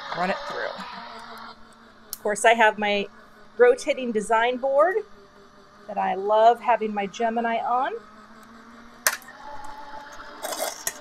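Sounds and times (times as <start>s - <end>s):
motor humming faintly: 0.0s - 11.0s.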